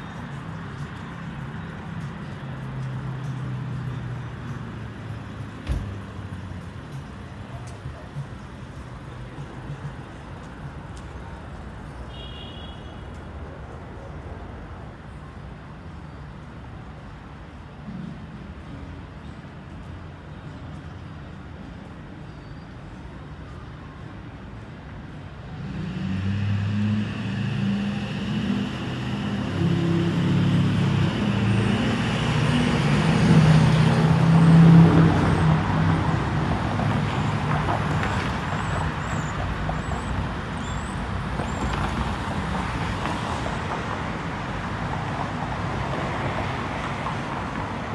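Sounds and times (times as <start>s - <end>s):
road noise: 0.0s - 47.9s.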